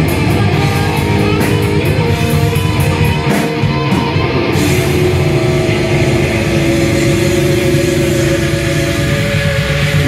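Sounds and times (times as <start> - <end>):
metal band playing live: 0.0 - 10.0.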